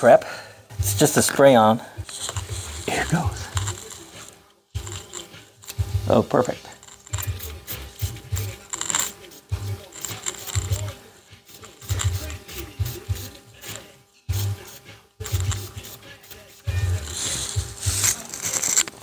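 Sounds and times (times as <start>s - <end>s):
spray bottle hisses: 2.0s - 5.8s, 7.0s - 19.0s.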